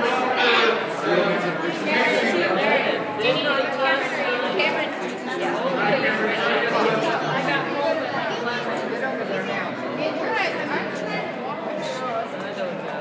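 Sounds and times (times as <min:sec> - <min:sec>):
crowd chatter in a hall: 0:00.0 - 0:13.0.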